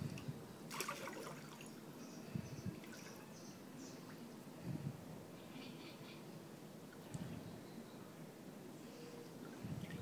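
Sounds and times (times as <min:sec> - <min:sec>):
water sloshing in a pool: 0:00.7 - 0:01.9, 0:09.4 - 0:10.0
soft low water swish: 0:09.4 - 0:10.0.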